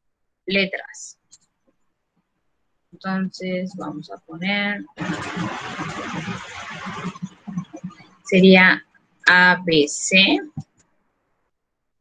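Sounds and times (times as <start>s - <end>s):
burst of rushing noise: 5.0s - 8.3s.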